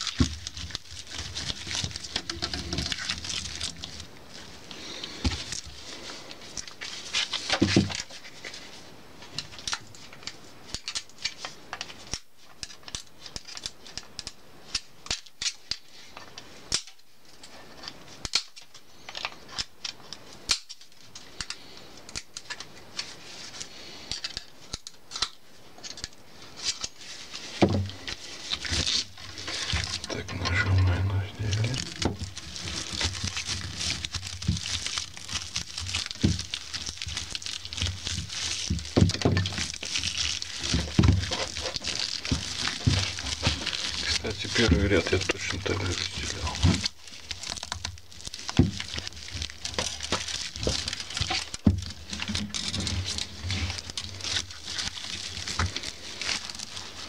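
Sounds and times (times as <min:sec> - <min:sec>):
broom bristles crackling and rustling: 0:00.0 - 0:57.0.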